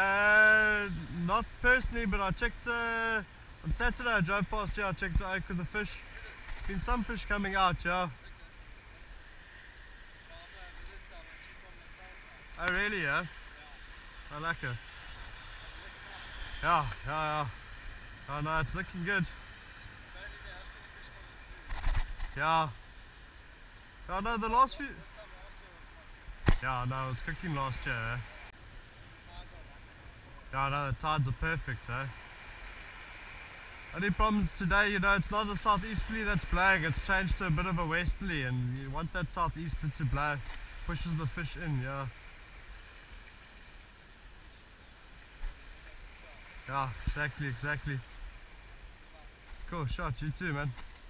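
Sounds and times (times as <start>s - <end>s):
faint hiss: 0.0s - 51.0s.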